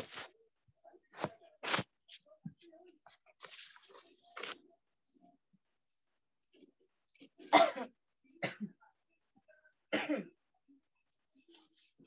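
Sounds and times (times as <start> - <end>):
person coughing: 7.5 - 8.8, 9.9 - 10.4.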